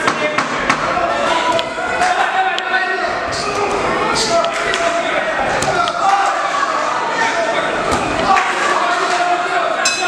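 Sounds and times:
voices calling out in a hall: 0:00.0 - 0:10.0.

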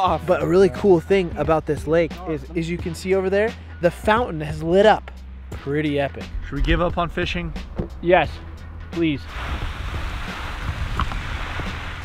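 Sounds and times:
wind rumbling on microphone: 0:06.2 - 0:12.0
fountain water jet spraying: 0:09.3 - 0:12.0.

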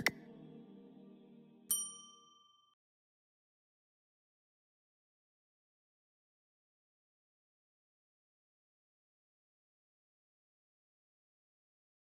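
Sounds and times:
soft background music: 0:00.0 - 0:02.8
notification bell ding: 0:01.7 - 0:02.7.

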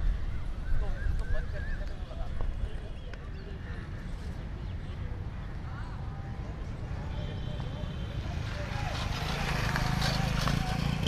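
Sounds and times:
bird calls: 0:00.0 - 0:05.5
distant traffic rumble: 0:00.0 - 0:11.0.

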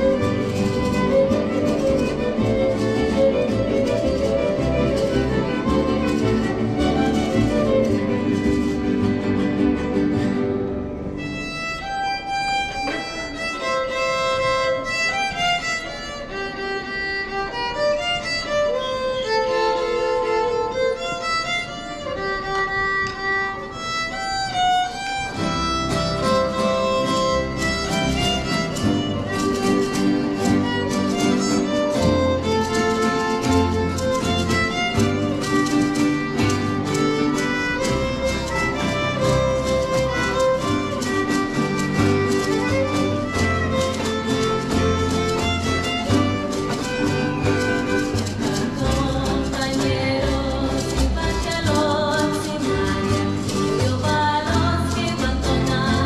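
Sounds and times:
mariachi ensemble playing: 0:00.0 - 0:56.0
strummed guitars: 0:00.0 - 0:56.0
violin melody: 0:00.0 - 0:56.0.

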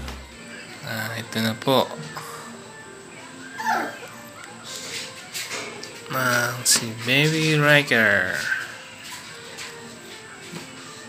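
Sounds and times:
quiet background music: 0:00.0 - 0:11.0
puppy whimpering: 0:03.4 - 0:04.2.

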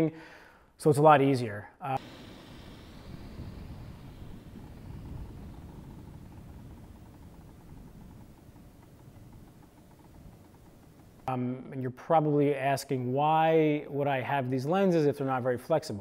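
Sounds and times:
distant airplane engine drone: 0:02.0 - 0:11.4.

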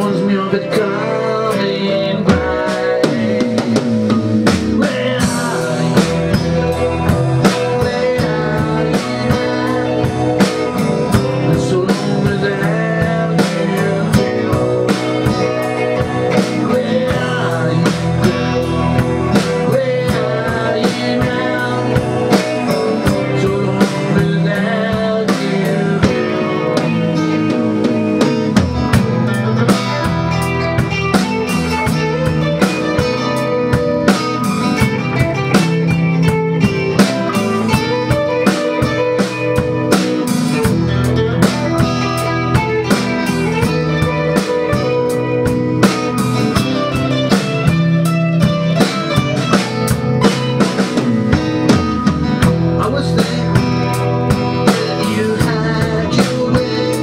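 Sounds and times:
drum kit beat: 0:00.0 - 0:57.0
electric bass: 0:00.0 - 0:57.0
electric guitar: 0:00.0 - 0:57.0.

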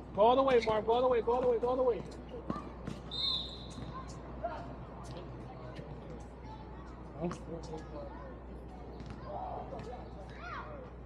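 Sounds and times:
high-pitched shoe squeal: 0:03.0 - 0:04.3
basketball bouncing: 0:09.0 - 0:10.0.

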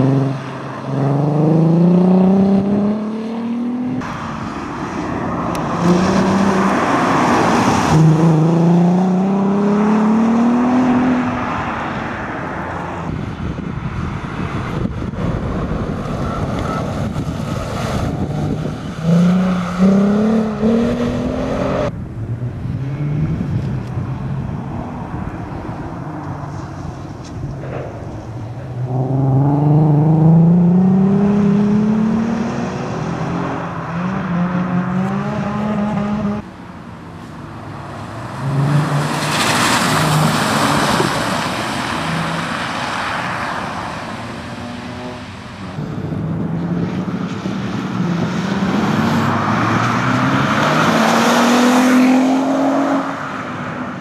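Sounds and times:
rally car engine accelerating: 0:28.8 - 0:36.4.

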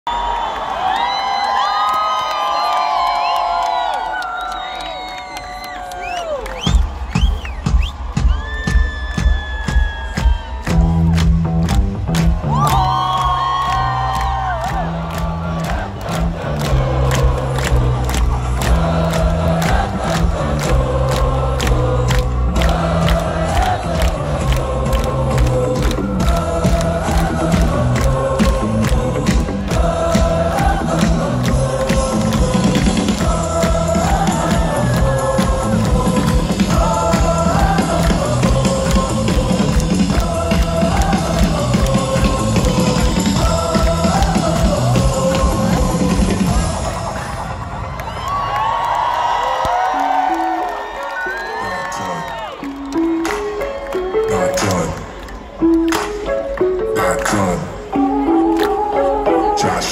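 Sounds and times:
crowd cheering and whooping: 0:00.1 - 0:28.4, 0:40.2 - 0:55.6
drum kit beat: 0:06.7 - 0:46.9
loud live rock music: 0:16.2 - 0:47.5.

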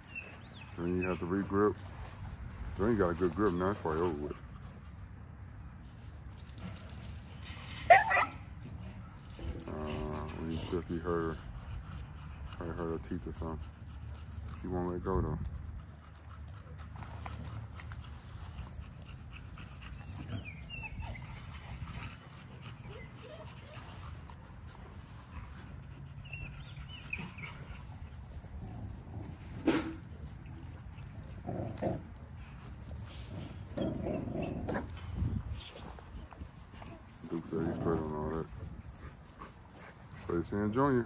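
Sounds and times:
puppies growling and grunting: 0:08.5 - 0:14.6, 0:15.7 - 0:39.2.

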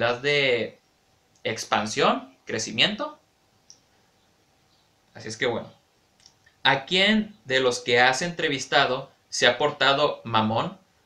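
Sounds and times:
faint click: 0:03.6 - 0:03.9, 0:06.2 - 0:06.6.

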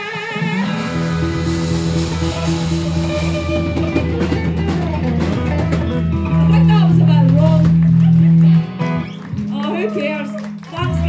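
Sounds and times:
bass guitar: 0:00.0 - 0:11.0
drum kit: 0:00.0 - 0:11.0
electric guitars: 0:00.0 - 0:11.0
guitar chord ringing: 0:00.5 - 0:09.5.

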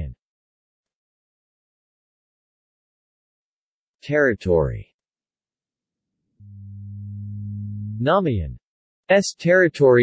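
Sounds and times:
low electronic tone: 0:06.4 - 0:08.1.

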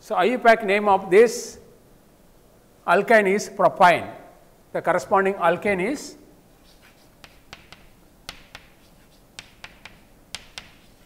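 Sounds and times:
chalk tapping on blackboard: 0:06.6 - 0:11.0.

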